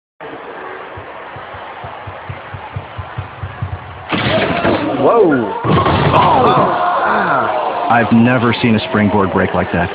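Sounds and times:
murmur of arena crowd: 0:00.2 - 0:09.9
running footfalls on runway: 0:00.9 - 0:04.1.

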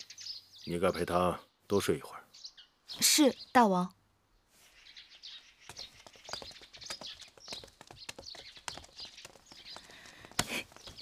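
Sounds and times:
faint birdsong chirping: 0:00.0 - 0:11.0.

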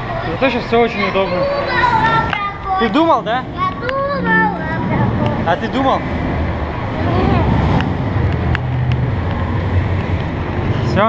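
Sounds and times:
faint voices: 0:00.0 - 0:07.9
low rumble of handheld camera: 0:01.4 - 0:10.9.

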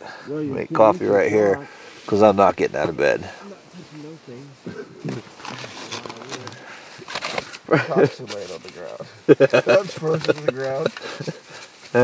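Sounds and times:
person laughing: 0:09.3 - 0:11.5.

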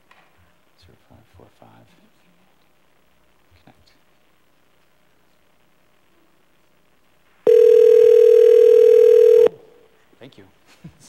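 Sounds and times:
telephone ringback tone: 0:07.5 - 0:09.6.

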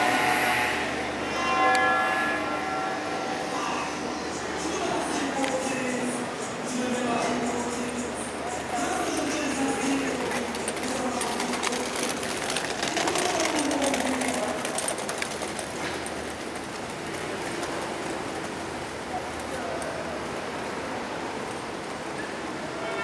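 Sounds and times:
passing traffic: 0:00.0 - 0:23.0
people's voices: 0:03.0 - 0:21.8.

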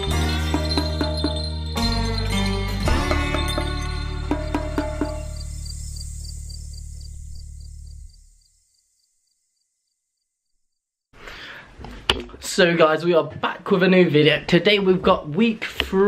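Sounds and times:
chiming notes: 0:00.0 - 0:05.9
low drone: 0:02.8 - 0:08.5.

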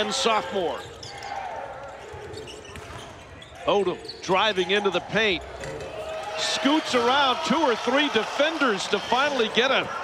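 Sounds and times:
murmur of arena noise: 0:00.0 - 0:10.0.

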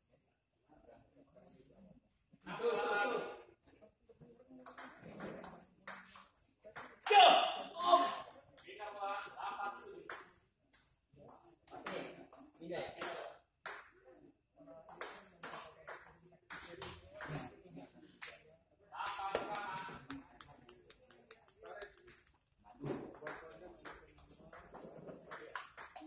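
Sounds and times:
ping-pong ball clicking: 0:09.8 - 0:11.0, 0:19.0 - 0:22.6, 0:23.2 - 0:26.0.

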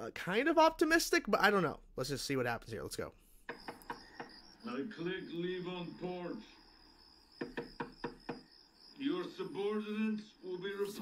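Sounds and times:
rapid knocking on door: 0:07.4 - 0:08.6.

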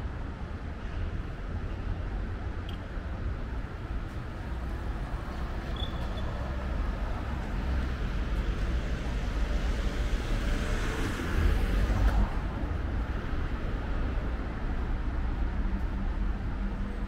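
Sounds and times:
steady low traffic rumble: 0:00.0 - 0:17.0.

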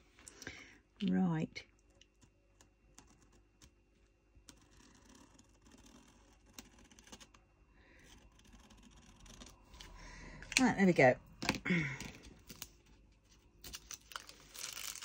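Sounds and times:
light clicks and scratches on plastic: 0:01.6 - 0:07.4.

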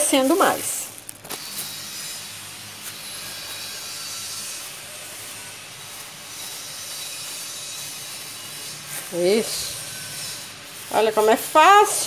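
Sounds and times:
soap scraping and rubbing: 0:00.0 - 0:12.0.

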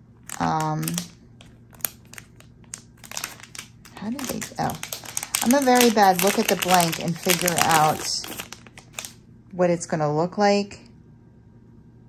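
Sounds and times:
plastic packaging crinkling: 0:00.0 - 0:09.2.

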